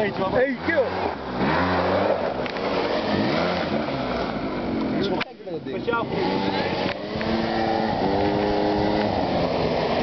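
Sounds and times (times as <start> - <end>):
quad bike engine revving: 0.0 - 10.0
steady rushing noise: 0.0 - 10.0.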